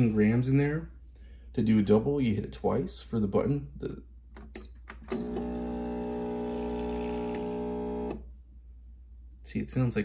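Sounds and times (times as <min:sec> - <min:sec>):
espresso machine pump buzzing: 0:05.1 - 0:08.2.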